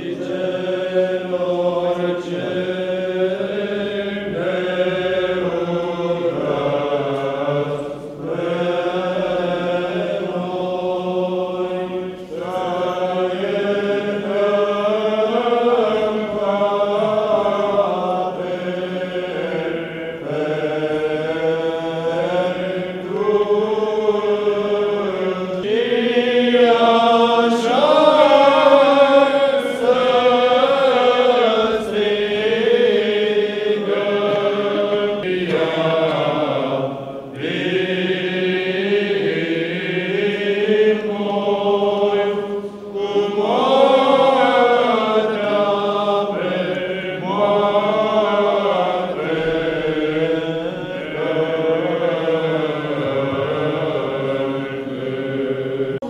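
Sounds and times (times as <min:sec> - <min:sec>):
voices chanting long held notes: 0:00.0 - 0:56.0.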